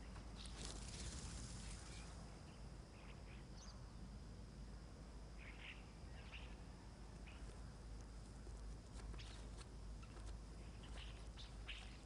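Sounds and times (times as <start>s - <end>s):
faint birds chirping: 0.0s - 12.0s
low steady hum: 0.0s - 12.0s.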